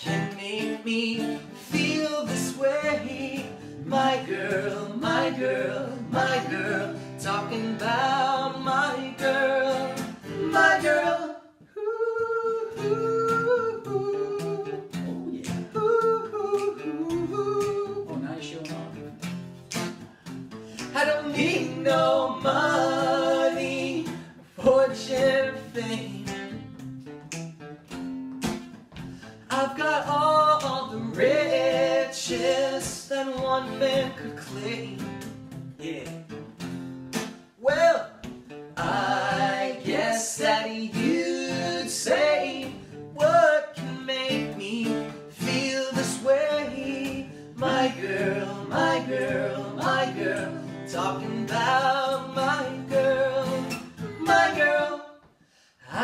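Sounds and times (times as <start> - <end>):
strummed acoustic guitar: 0.0 - 11.3, 12.7 - 55.0
men singing together: 1.1 - 11.4, 20.9 - 26.0, 29.5 - 34.6, 38.8 - 55.2.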